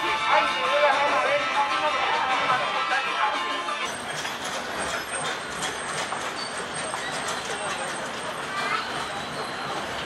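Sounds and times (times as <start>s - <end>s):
diesel locomotive running: 0.0s - 10.0s.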